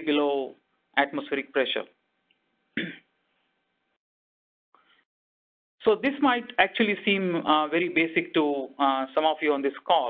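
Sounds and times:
man talking: 0:00.0 - 0:02.0, 0:05.8 - 0:10.0
man clearing his throat: 0:02.8 - 0:03.1.

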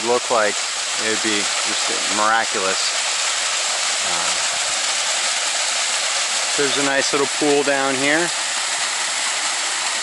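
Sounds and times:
waterfall rushing into pool: 0:00.0 - 0:10.0.

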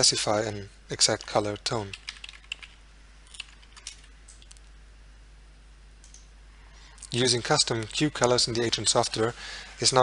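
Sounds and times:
low steady hiss: 0:00.0 - 0:10.0
computer keyboard keystrokes: 0:01.2 - 0:04.7, 0:06.0 - 0:06.3.

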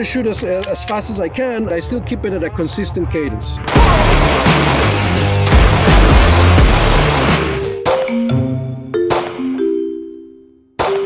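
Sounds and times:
pistol shots: 0:03.7 - 0:07.3, 0:10.8 - 0:11.0
music with mallet notes: 0:04.1 - 0:10.8.

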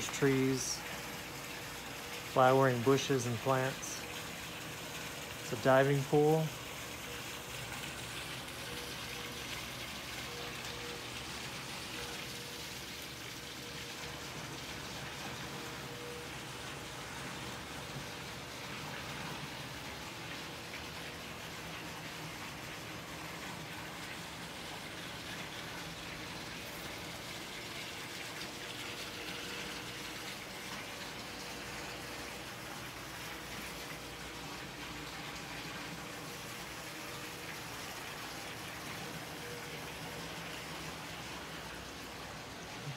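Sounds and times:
water spilling into pool: 0:00.0 - 0:42.9.

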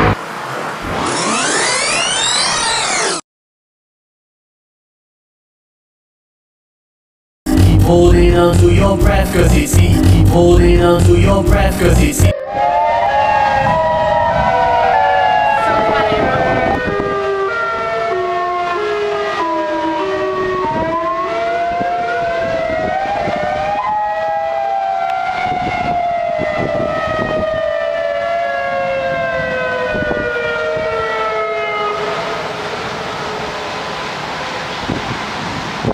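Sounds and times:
rush of wind-like noise: 0:00.0 - 0:03.0, 0:12.2 - 0:17.3, 0:21.6 - 0:27.8, 0:28.6 - 0:31.0, 0:32.6 - 0:35.9
warning sirens wailing: 0:00.0 - 0:03.2, 0:07.5 - 0:35.9.

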